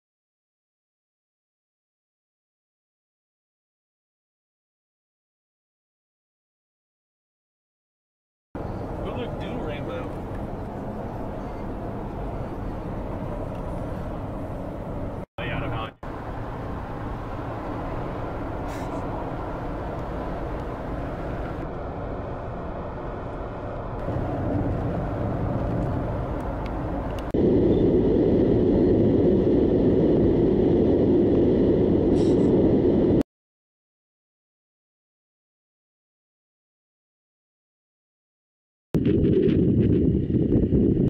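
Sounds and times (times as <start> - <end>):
car driving heard inside cabin: 8.6 - 33.2.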